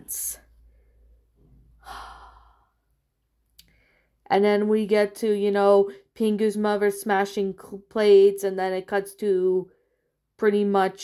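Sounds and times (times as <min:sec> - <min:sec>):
person sighing: 0:01.8 - 0:02.7.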